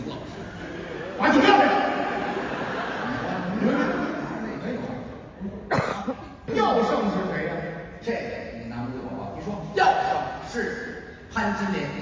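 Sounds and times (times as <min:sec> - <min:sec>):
man speaking into a microphone: 0:03.4 - 0:12.0
sharp cough: 0:05.6 - 0:06.5.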